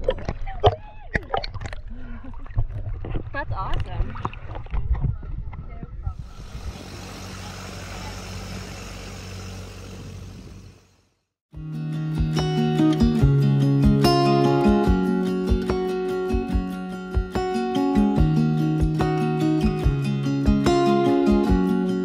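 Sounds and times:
water sloshing and splashing: 0.0s - 5.1s
wind: 0.0s - 11.1s
boat engine humming: 6.1s - 11.2s.

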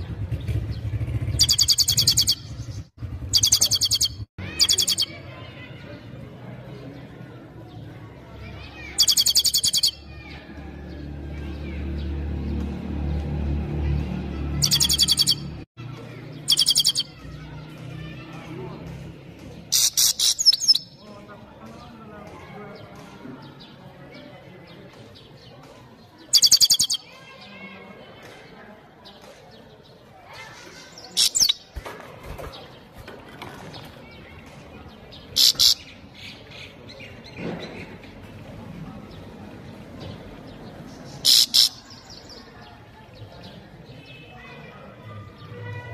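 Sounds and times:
bird trilling song: 0.0s - 5.6s, 8.5s - 12.1s, 14.4s - 15.7s, 16.3s - 18.3s, 19.5s - 21.2s, 22.7s - 27.6s, 29.1s - 38.3s, 39.1s - 44.4s
faint bird twittering: 0.1s - 5.7s, 8.6s - 10.4s, 14.5s - 15.6s, 16.3s - 17.4s, 19.7s - 21.1s, 26.2s - 27.7s, 34.9s - 38.3s
goldfinch sharp high calls: 1.3s - 5.1s, 9.0s - 10.0s, 16.5s - 17.1s, 35.4s - 35.9s.

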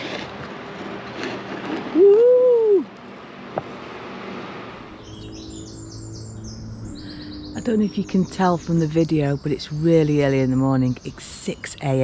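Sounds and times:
low steady hum: 0.0s - 12.0s
woman's drawn-out whoo: 1.9s - 3.0s
songbirds singing: 4.9s - 12.0s.

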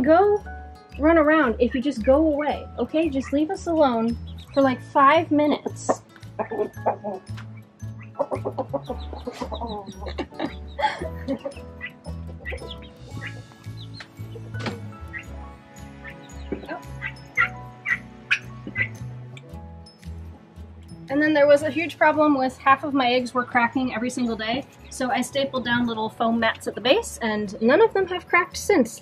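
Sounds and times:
chickens clucking: 5.1s - 19.0s
music with steady beat: 5.6s - 21.2s.

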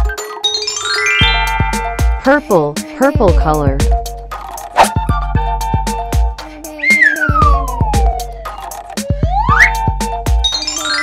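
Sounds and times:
children's music with steady beat: 0.0s - 11.0s
descending whistle sound effect: 6.8s - 11.0s.

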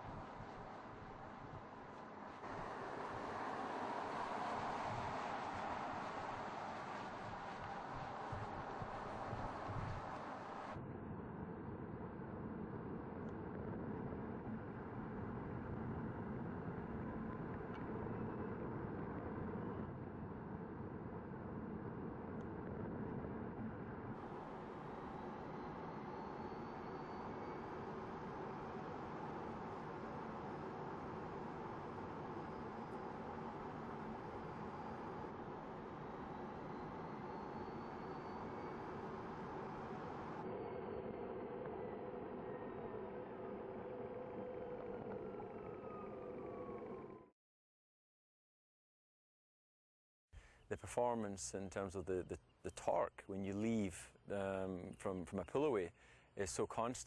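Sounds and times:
faint rising whine: 0.0s - 47.3s
road and wind noise: 0.0s - 47.3s.

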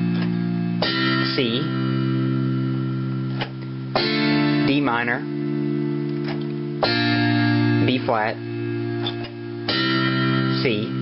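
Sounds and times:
electronic keyboard chord: 0.0s - 11.0s.

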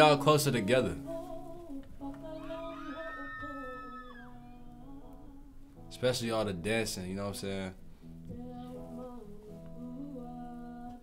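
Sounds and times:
acoustic guitar: 0.0s - 11.0s
woman singing long held notes: 1.0s - 5.7s, 8.3s - 11.0s.

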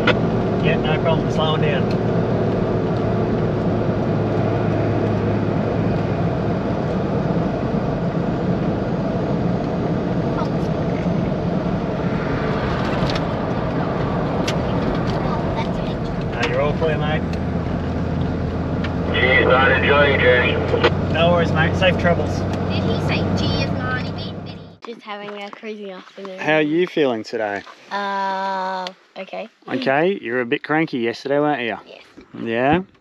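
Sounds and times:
engine and tyre drone: 0.0s - 24.8s.

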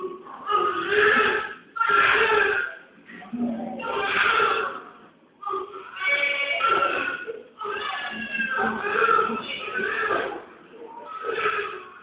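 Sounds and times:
newborn baby crying: 0.4s - 2.8s, 3.8s - 12.0s.

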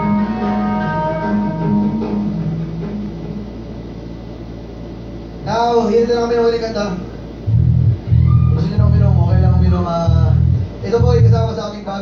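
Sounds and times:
low electric bass notes: 0.0s - 3.8s, 7.4s - 11.8s
amplifier hum and hiss: 0.0s - 12.0s.

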